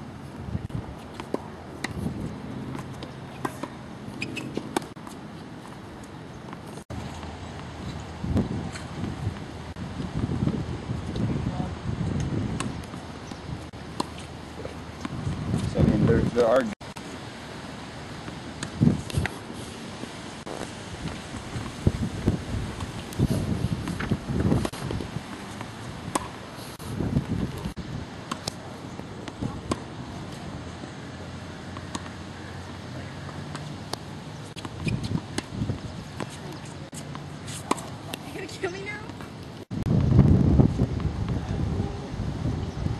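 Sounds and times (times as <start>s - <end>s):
wind rumble on microphone: 0.1s - 1.0s, 1.8s - 3.0s, 6.9s - 16.7s, 18.5s - 19.5s, 20.4s - 28.2s, 28.9s - 30.8s, 34.7s - 37.0s, 39.7s - 42.9s
tennis ball hit and bouncing: 1.0s - 5.8s, 13.9s - 15.6s, 23.8s - 26.4s, 28.3s - 28.6s, 29.2s - 30.4s, 31.7s - 39.4s.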